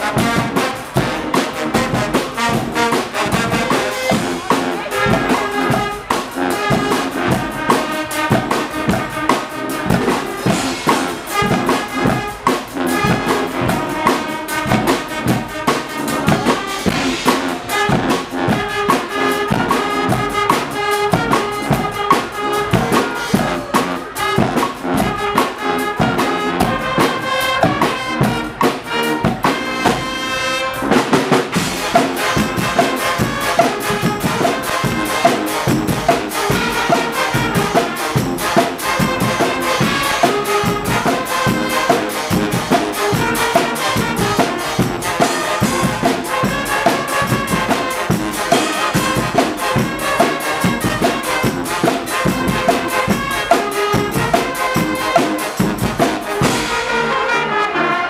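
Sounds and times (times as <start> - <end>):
drum kit steady beat: 0.0 - 56.9
brass band playing loud: 0.0 - 58.0.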